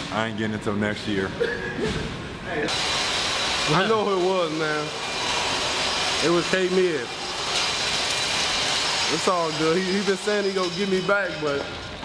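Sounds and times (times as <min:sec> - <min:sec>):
steady hissing rush: 0:02.6 - 0:11.6.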